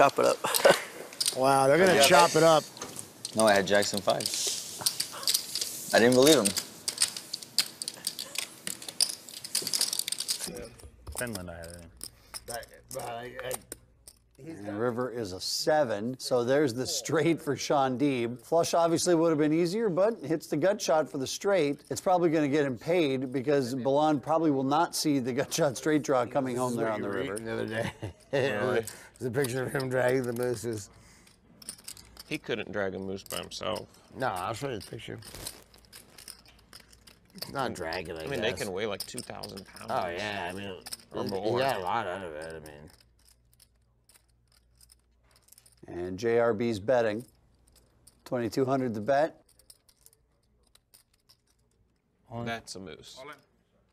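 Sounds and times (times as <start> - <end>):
clay poker chips clicking: 0.0 - 14.4, 27.0 - 45.9, 47.1 - 52.0.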